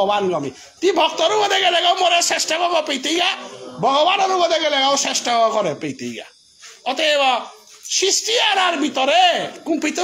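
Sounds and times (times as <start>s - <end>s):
faint high insect chirring: 0.0s - 10.0s.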